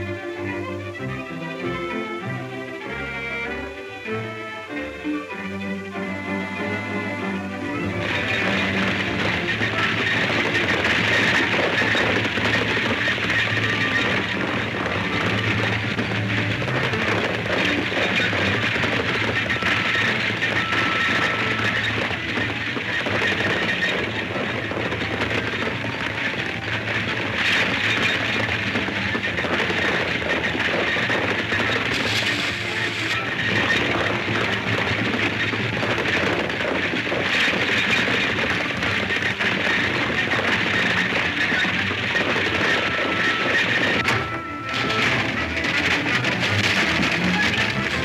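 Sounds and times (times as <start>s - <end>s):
dense steady rumbling noise: 0.0s - 48.0s
loud chase music: 0.0s - 48.0s.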